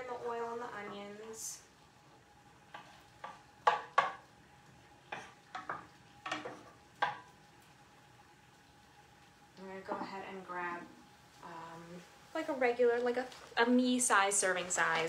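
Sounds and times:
onions stirred in oil: 1.6 - 8.8.

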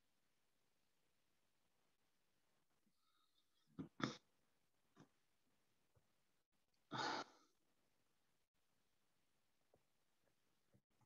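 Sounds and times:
person sighing: 6.9 - 7.5.

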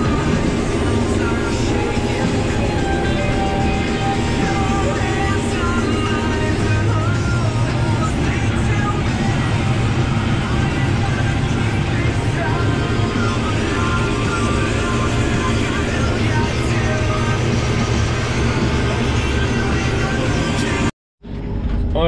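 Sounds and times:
combine harvester running: 0.0 - 22.0.

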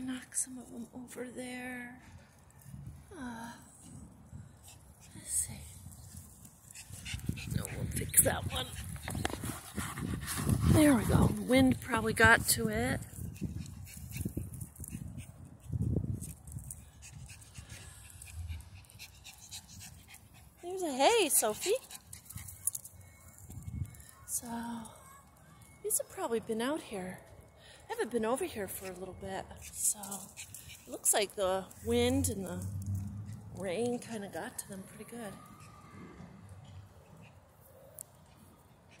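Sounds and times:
small dog panting: 6.7 - 11.5, 16.7 - 22.7, 37.0 - 39.0
faint low outdoor rumble: 30.7 - 34.8
low rumbling noise: 31.8 - 33.8.

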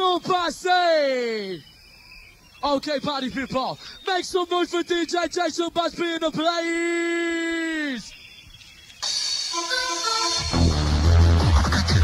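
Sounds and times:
burst of high hiss: 9.0 - 12.0
clipped synth stabs: 9.0 - 12.0
dance music mix: 9.0 - 12.0.

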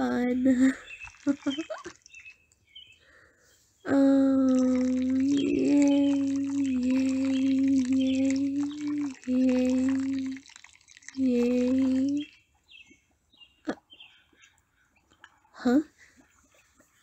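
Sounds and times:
faint water drips: 0.2 - 3.1, 3.9 - 15.6.

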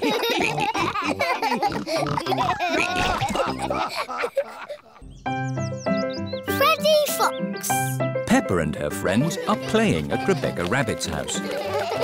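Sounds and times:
cartoon voices laughing: 0.0 - 5.2, 9.3 - 12.0
pig snorts: 1.7 - 2.3.

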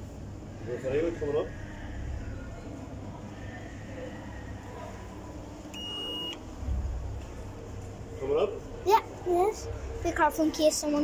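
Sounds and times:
electronic lift beep: 5.7 - 6.4.

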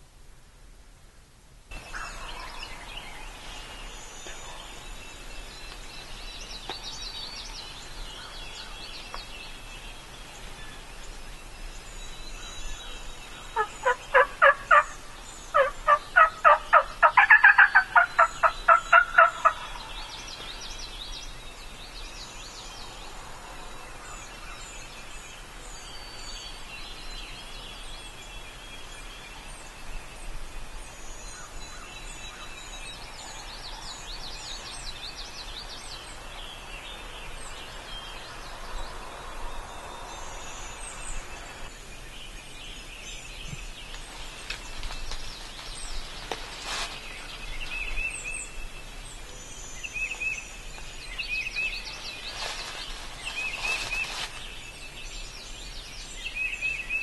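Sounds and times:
songbirds chirping faintly: 0.0 - 57.0
turkey yelping: 13.6 - 14.9, 15.6 - 19.7.

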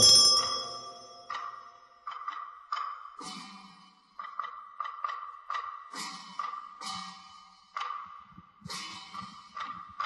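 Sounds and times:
ritual percussion strokes ringing: 0.0 - 1.9.

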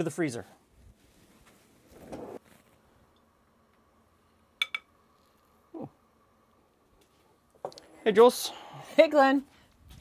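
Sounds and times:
muffled rubbing or sliding: 0.8 - 2.7.

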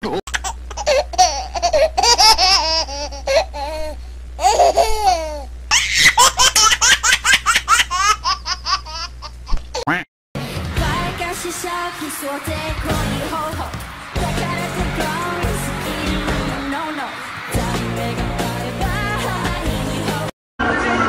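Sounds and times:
steady low hum: 0.0 - 9.8.

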